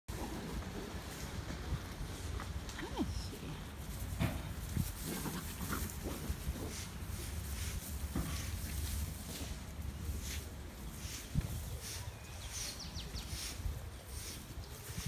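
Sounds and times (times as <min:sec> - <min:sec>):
dog running in long grass: 0:00.1 - 0:12.1
wind rumble on microphone: 0:00.1 - 0:15.0.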